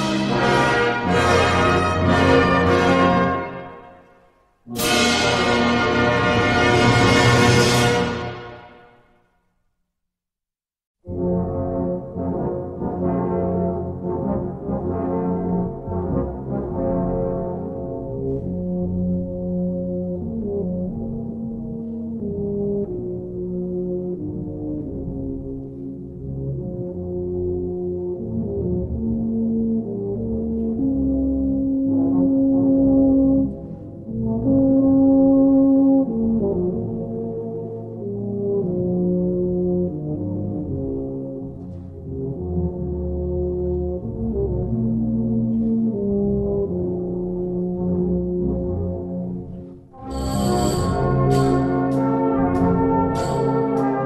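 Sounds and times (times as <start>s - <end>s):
brass band playing: 0.0s - 4.1s, 4.7s - 8.9s, 50.0s - 54.0s.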